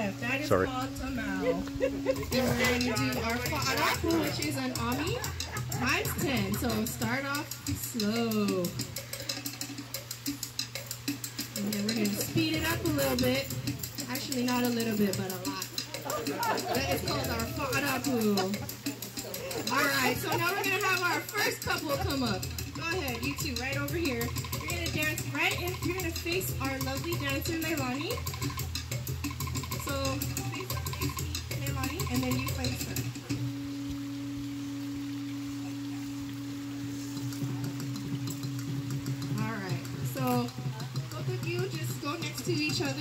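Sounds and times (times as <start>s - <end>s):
fast drum beat: 0.0s - 33.7s, 35.5s - 43.0s.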